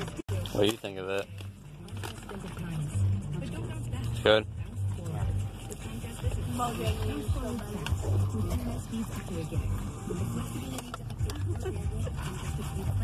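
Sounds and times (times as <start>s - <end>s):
indistinct talking in car: 0.0s - 13.0s.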